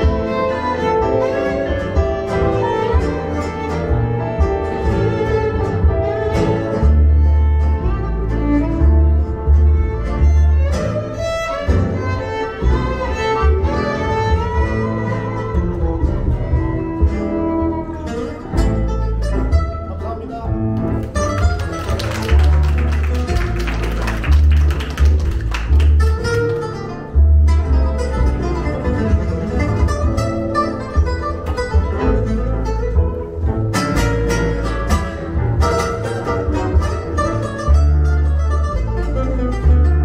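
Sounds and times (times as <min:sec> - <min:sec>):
acoustic guitar: 0:00.0 - 0:40.0
upright double bass: 0:00.0 - 0:40.0
violin melody: 0:00.0 - 0:40.0.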